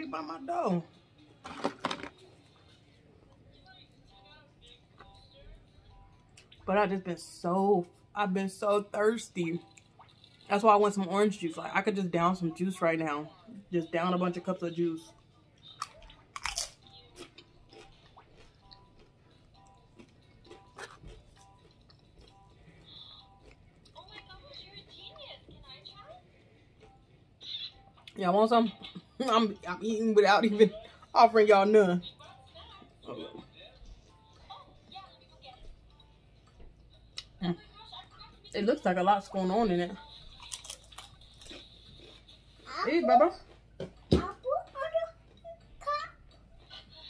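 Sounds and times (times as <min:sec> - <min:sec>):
crunchy chewing: 0:15.5 - 0:25.4, 0:40.0 - 0:42.7.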